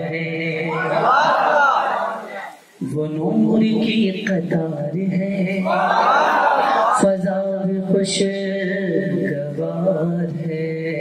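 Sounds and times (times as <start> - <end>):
man singing into a microphone: 0.0 - 1.0, 2.8 - 6.0, 7.0 - 11.0.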